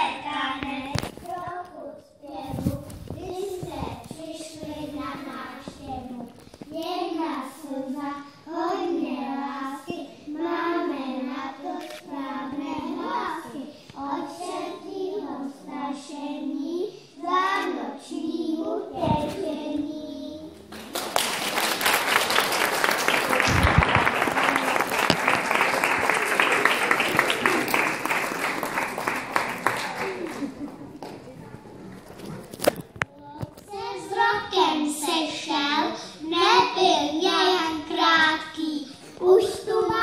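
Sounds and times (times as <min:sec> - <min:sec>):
young children singing: 0:00.0 - 0:20.8, 0:33.4 - 0:40.0
audience applauding: 0:20.7 - 0:31.3.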